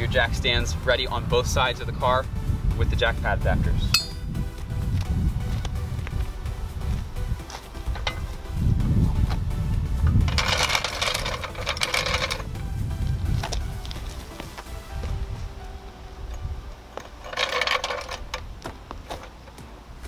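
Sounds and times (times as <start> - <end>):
wind rumbling on microphone: 0.0 - 19.9
background music: 0.0 - 20.0
floor jack clicks and rattles: 10.2 - 12.5.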